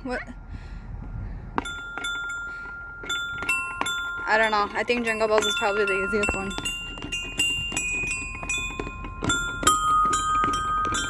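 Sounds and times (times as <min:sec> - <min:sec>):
musical floor panel chime: 0:01.6 - 0:11.0.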